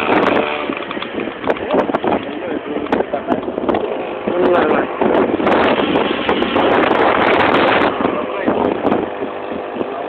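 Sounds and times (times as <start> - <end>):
road noise: 0.0 - 10.0
wind noise in moving vehicle: 0.0 - 10.0.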